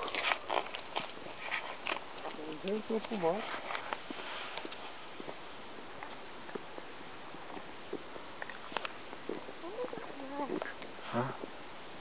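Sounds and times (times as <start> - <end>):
crunching and clicking: 0.0 - 4.0.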